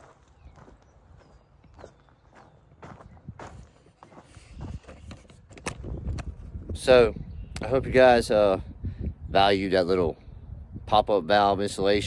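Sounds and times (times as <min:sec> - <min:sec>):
footsteps scuffing on dirt: 0:00.0 - 0:05.5.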